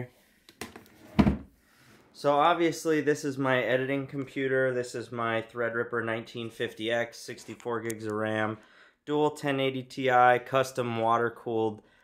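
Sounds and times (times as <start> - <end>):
drawer thumping shut: 0.7 - 1.5.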